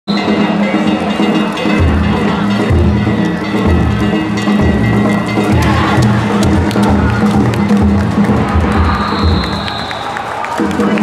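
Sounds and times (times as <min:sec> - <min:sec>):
taiko drum beating: 0:00.1 - 0:09.8
crowd: 0:00.1 - 0:11.0
hand gongs clanking: 0:00.2 - 0:07.9.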